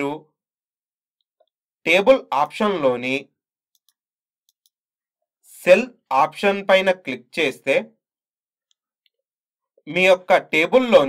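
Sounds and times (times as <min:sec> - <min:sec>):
computer mouse clicks: 0:03.7 - 0:04.8.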